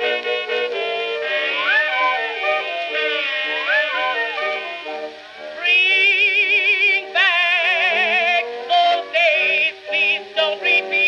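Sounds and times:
old record of singer with orchestra: 0:00.0 - 0:11.0.

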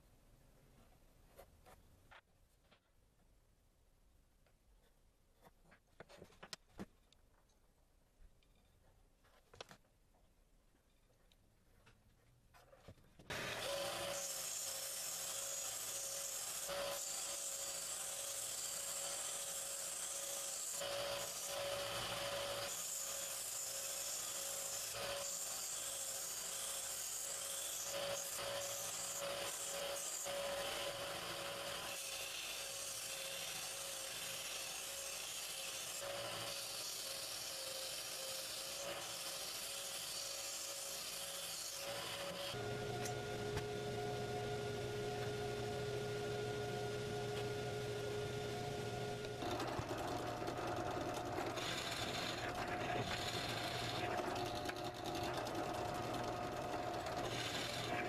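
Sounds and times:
wood being sanded: 0:13.3 - 0:42.6, 0:51.2 - 0:58.0
belt sander humming: 0:13.3 - 0:58.0.

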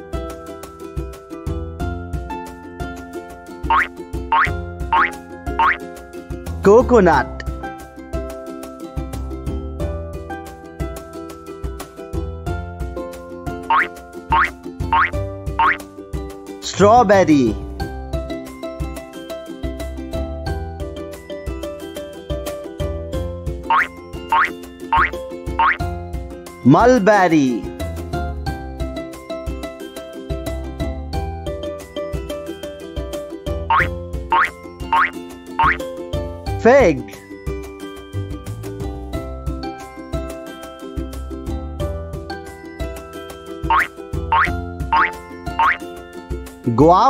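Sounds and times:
bouncy children's music: 0:00.1 - 0:47.0.

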